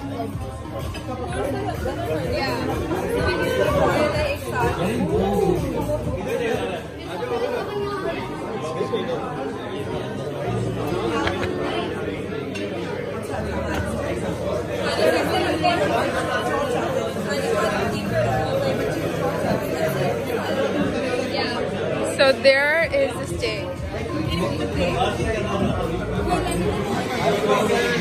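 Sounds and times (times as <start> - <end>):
many voices talking indoors: 0.0 - 28.0.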